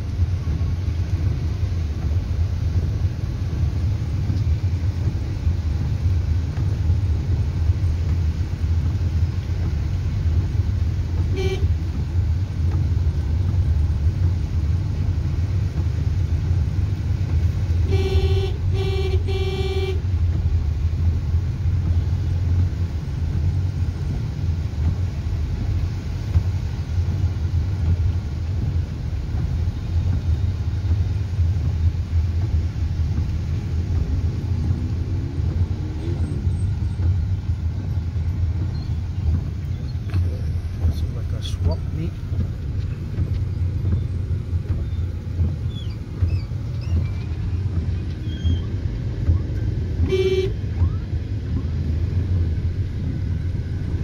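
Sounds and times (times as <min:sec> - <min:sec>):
road and engine rumble in car: 0:00.0 - 0:54.0
car horn toots: 0:11.3 - 0:11.8, 0:17.8 - 0:20.0, 0:50.0 - 0:50.6.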